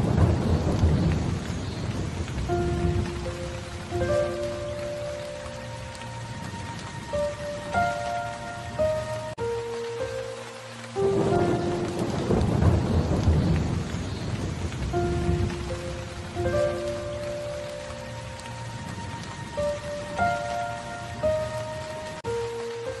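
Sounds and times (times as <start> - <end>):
rolling thunder: 0.0 - 5.5, 11.0 - 22.2
steady rain: 0.0 - 23.0
slow melody of held notes: 2.5 - 13.8, 14.9 - 23.0.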